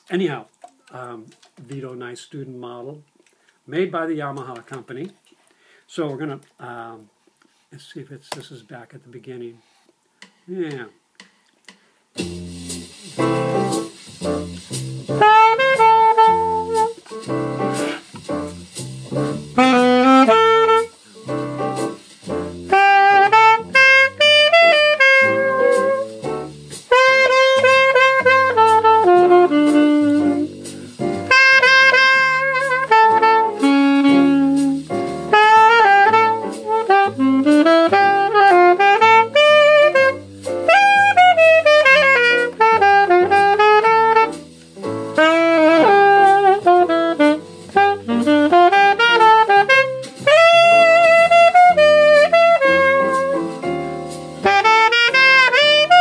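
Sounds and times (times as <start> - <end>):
alto saxophone jazzy melody: 12.2 - 56.0.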